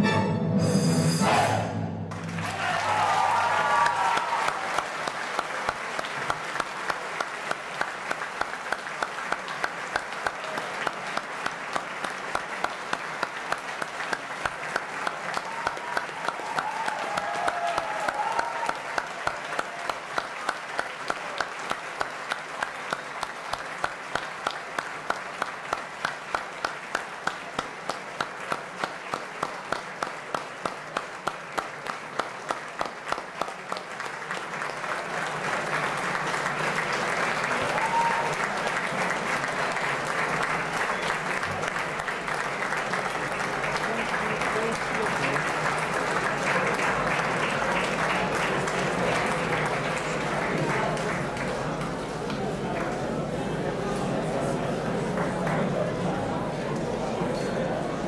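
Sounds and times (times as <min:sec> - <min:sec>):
audience rhythmic clapping: 0:02.1 - 0:58.0
scattered applause: 0:02.1 - 0:58.0.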